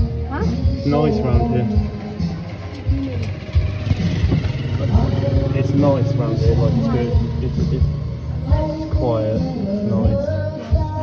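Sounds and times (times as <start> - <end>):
vehicle engine running: 0.0 - 11.0
people talking: 0.3 - 1.9, 4.6 - 10.5.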